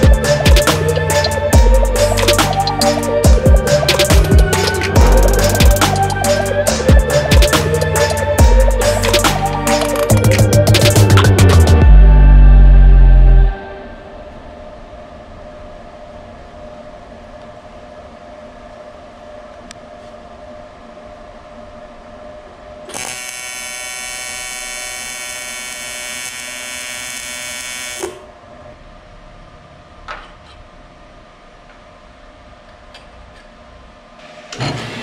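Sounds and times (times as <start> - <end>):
steady hum: 0.0 - 34.2
welding arc buzzing: 22.9 - 28.3.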